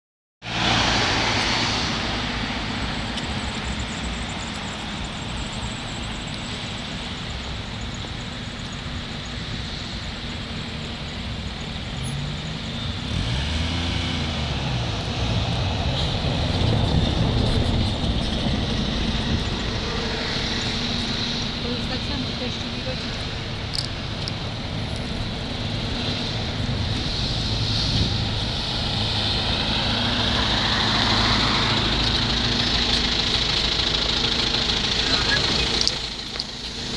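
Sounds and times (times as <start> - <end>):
bus engine: 0.4 - 36.9
cars passing: 0.4 - 36.9.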